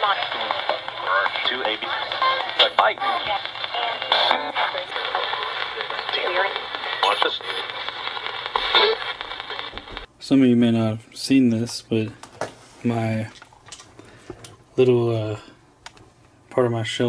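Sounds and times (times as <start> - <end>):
radio sweeping through stations: 0.0 - 10.1
tinny broken broadcast voices: 0.0 - 10.1.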